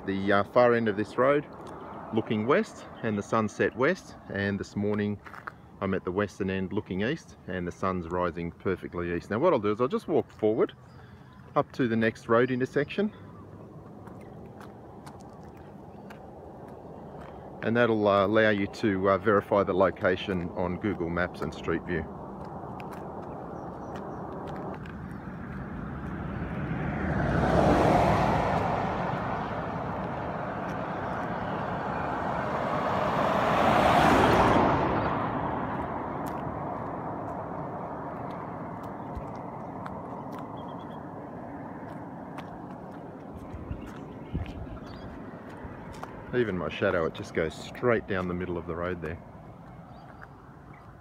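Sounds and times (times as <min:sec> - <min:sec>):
low road noise: 0:00.0 - 0:51.0
vehicles passing by: 0:00.0 - 0:51.0.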